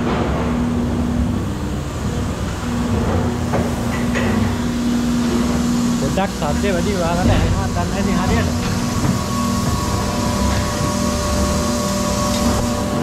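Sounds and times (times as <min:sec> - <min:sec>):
factory machinery rumble: 0:00.0 - 0:13.0
machinery hum: 0:00.0 - 0:13.0.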